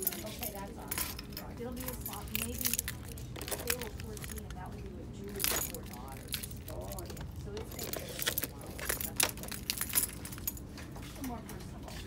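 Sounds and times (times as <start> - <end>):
small metal objects jingling: 0.0 - 11.4
faint voices: 0.0 - 12.0.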